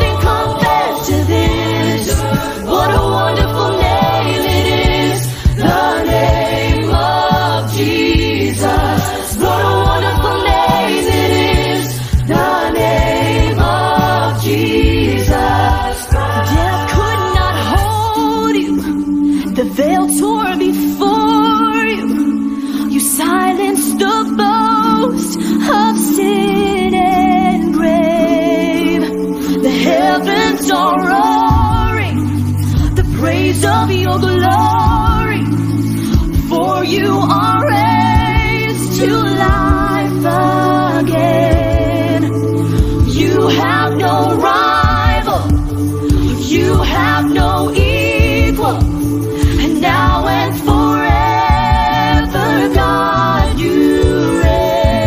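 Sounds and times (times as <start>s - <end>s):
bass notes and beat: 0.0s - 18.2s, 31.5s - 55.0s
voices singing religious song: 0.0s - 55.0s.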